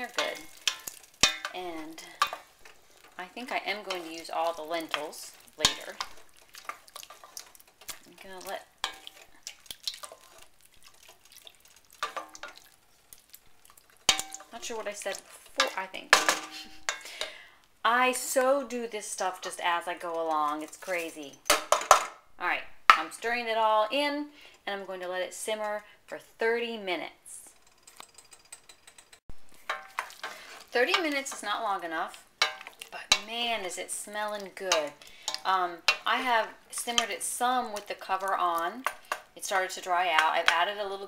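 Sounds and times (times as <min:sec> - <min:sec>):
wooden spoon stirring thick mixture: 0:00.0 - 0:15.9, 0:29.5 - 0:41.0
person speaking: 0:08.0 - 0:08.7.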